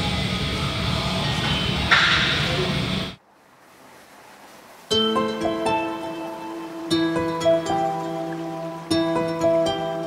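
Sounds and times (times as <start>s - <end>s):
ventilation hum: 0.0s - 4.8s.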